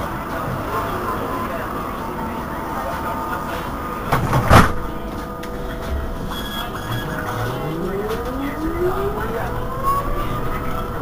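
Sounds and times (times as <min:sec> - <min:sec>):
trolleybus electrical hum: 0:00.0 - 0:11.0.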